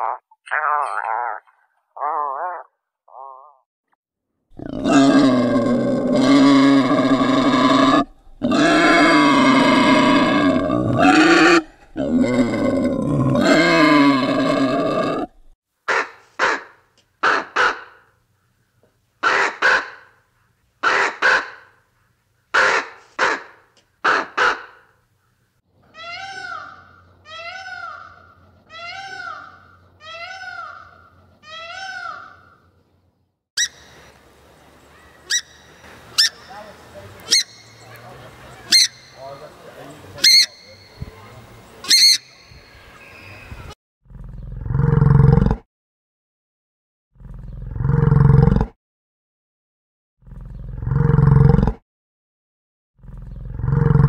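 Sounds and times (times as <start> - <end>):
boar calling loudly: 0.0 - 3.6, 4.5 - 18.0, 37.2 - 39.5, 40.2 - 40.9.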